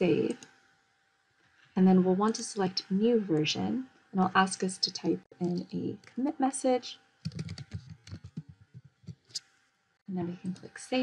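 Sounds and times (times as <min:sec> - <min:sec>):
typing on computer keyboard: 0:07.3 - 0:08.6.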